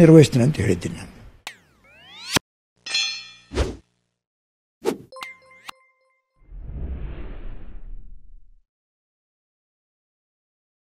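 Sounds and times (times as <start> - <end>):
electronic ding: 5.1 - 6.4
short swoosh: 6.5 - 8.6.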